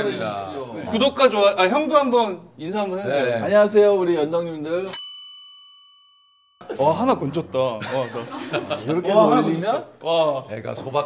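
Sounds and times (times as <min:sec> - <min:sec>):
bright bell ding: 0:04.9 - 0:06.6.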